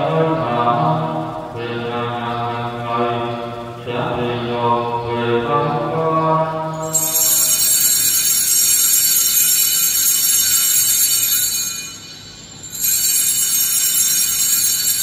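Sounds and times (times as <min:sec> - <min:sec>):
altar bells jingling: 0:06.8 - 0:15.0.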